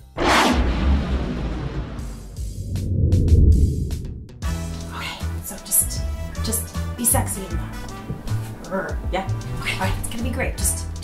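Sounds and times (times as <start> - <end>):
cinematic whoosh: 0.0 - 4.9
deep rumble: 0.0 - 5.0.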